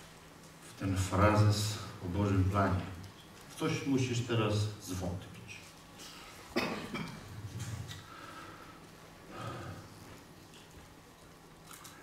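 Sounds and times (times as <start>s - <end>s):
person coughing: 6.5s - 7.3s.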